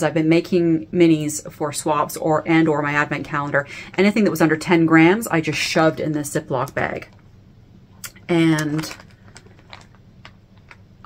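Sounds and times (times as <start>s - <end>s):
plastic bag crinkling: 8.4s - 11.0s.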